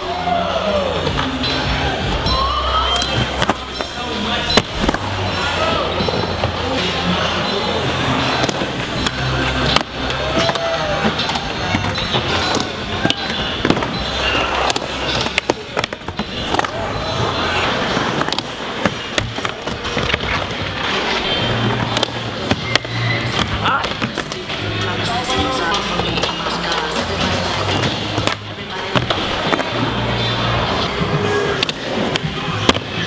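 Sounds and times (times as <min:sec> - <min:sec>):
skateboard wheels rolling on concrete: 0:00.0 - 0:33.0
skateboard clacking: 0:02.9 - 0:33.0.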